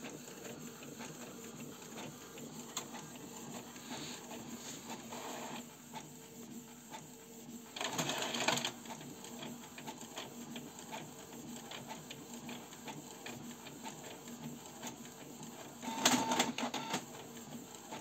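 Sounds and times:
printer mechanism ticking: 0:15.8 - 0:18.0.

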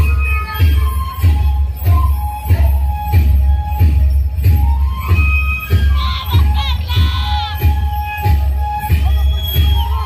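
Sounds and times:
carnival music: 0:00.0 - 0:10.0
steady drum beat: 0:00.0 - 0:10.0.

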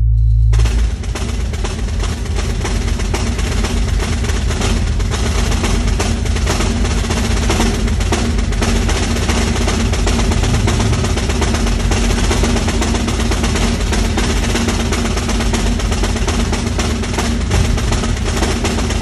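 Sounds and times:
snare drum roll: 0:00.6 - 0:19.0.

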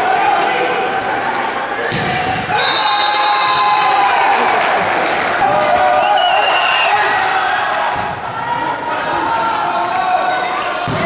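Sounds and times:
players and spectators shouting: 0:00.0 - 0:11.0
referee's whistle: 0:02.5 - 0:03.6, 0:06.0 - 0:07.0.

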